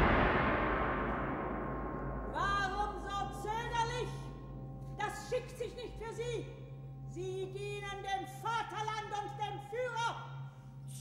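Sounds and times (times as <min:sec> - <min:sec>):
percussion crash ringing: 0:00.0 - 0:04.2.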